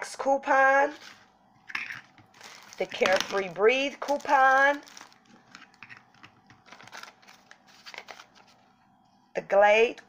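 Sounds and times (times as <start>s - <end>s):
packaging clicks and rustles: 1.8s - 8.6s.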